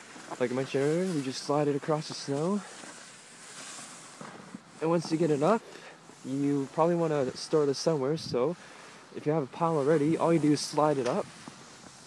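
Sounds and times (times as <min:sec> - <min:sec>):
snow crunching: 0:00.0 - 0:12.0
snow scoop scraping through snow: 0:00.0 - 0:12.0.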